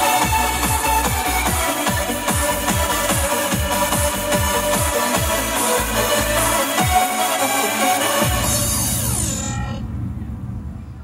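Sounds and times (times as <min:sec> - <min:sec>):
dance music winding down in pitch: 0:00.0 - 0:09.8
low bass rumble: 0:08.2 - 0:11.0.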